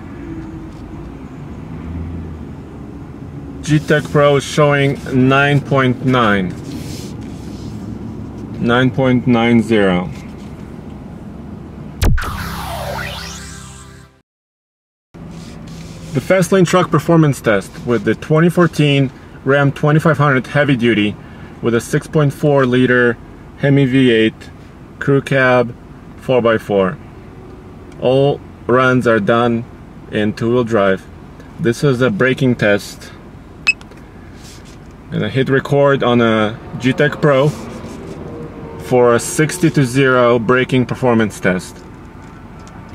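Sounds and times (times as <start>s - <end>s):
road and engine noise in vehicle: 0.0s - 12.0s, 15.2s - 42.9s
electronic hit with falling pitch: 12.0s - 14.2s
synthesized whoosh over chord: 12.0s - 14.2s.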